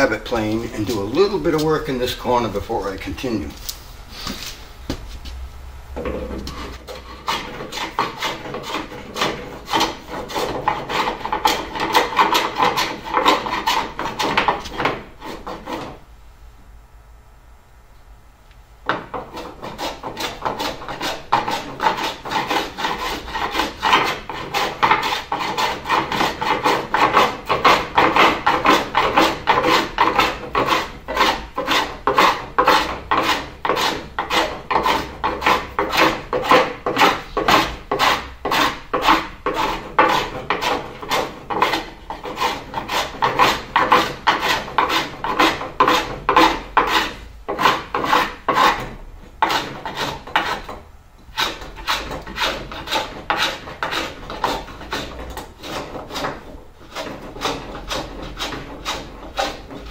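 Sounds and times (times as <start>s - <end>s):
hand plane shaving wood: 6.5s - 16.0s, 19.0s - 59.9s.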